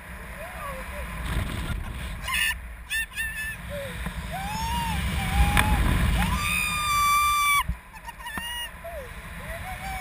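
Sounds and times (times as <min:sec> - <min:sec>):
wind buffeting microphone: 0:00.6 - 0:02.4, 0:03.4 - 0:07.8
person shrieking: 0:02.2 - 0:07.6.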